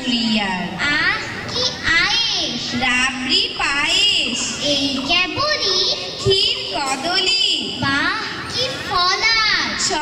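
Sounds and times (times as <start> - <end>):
girls reciting into microphones: 0.0 - 10.0.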